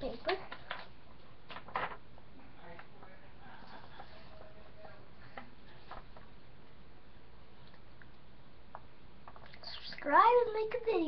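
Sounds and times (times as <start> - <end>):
background hiss: 3.4 - 11.0.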